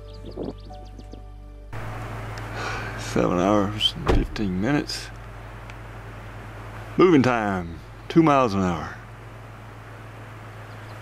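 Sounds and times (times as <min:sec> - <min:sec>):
faint hiss: 0:01.8 - 0:07.0
steady low hum: 0:01.8 - 0:11.0.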